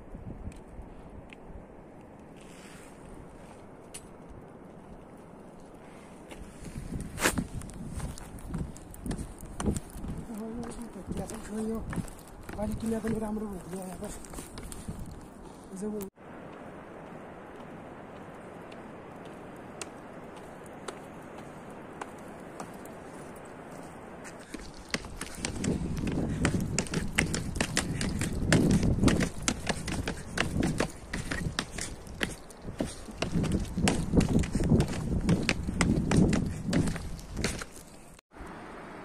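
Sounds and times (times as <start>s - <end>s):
footsteps: 5.9s - 38.2s
wind buffeting microphone: 6.2s - 37.9s.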